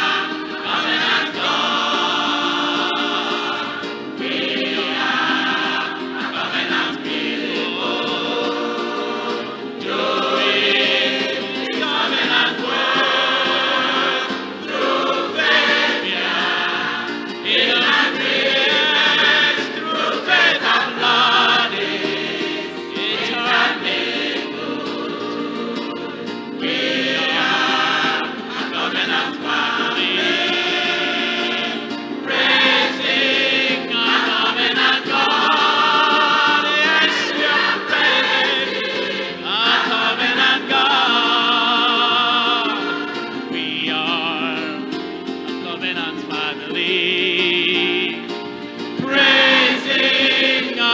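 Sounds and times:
mixed choir singing gospel: 0.0 - 50.9.

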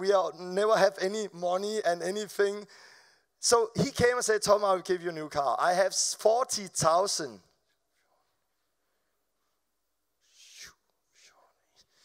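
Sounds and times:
man's breathy sound: 10.2 - 12.0.

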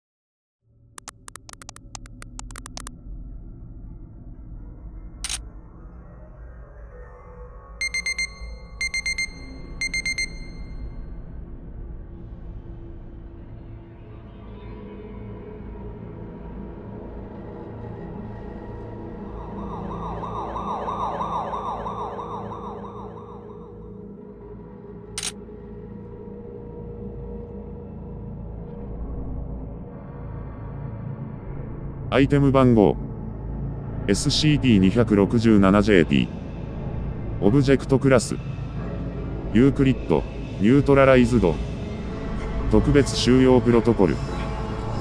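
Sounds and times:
electronic alarm warble: 1.0 - 2.9, 7.8 - 10.9, 19.2 - 24.0
low ambient drone: 11.4 - 32.1.

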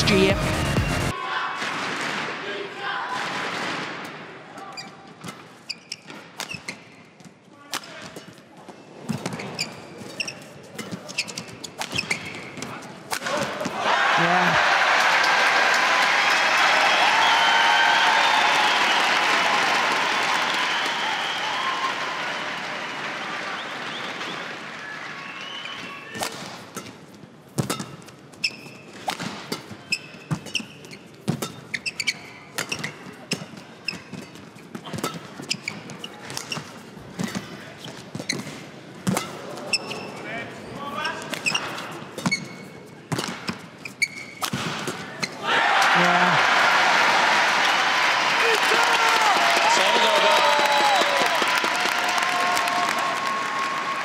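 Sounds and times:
crowd applauding and cheering: 0.0 - 1.2, 13.8 - 26.2, 45.5 - 54.0
shoe squeaks: 4.6 - 7.0, 8.7 - 12.9, 27.6 - 44.4
racket hitting shuttlecock: 26.2 - 37.5, 38.1 - 40.0, 41.3 - 43.6.

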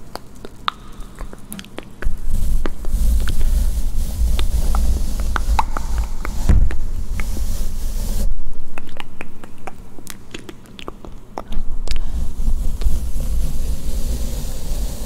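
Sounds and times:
brush scrubbing on microphone: 1.2 - 8.3, 12.0 - 15.0.

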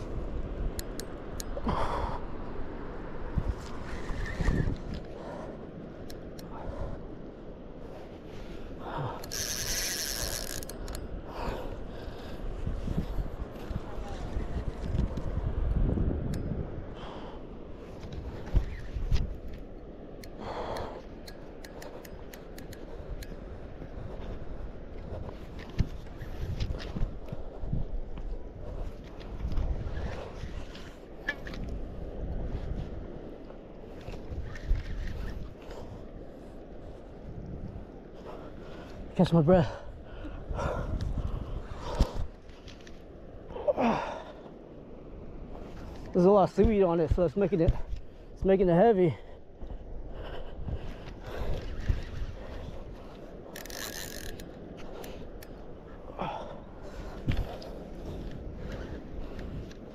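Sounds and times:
wind noise: 0.0 - 59.9.

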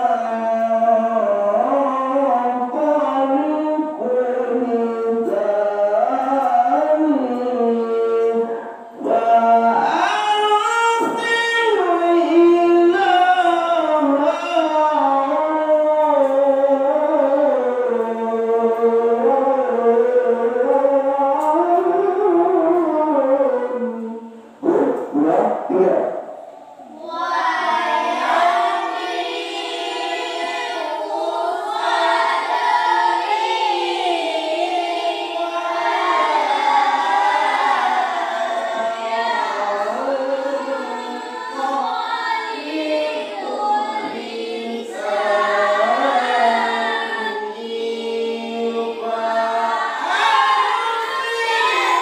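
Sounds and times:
man speaking through microphone: 24.6 - 26.4
children chanting together: 26.8 - 52.0.

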